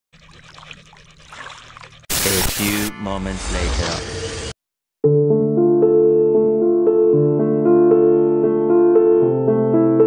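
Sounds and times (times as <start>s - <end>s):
trickling water drips: 0.2s - 2.1s.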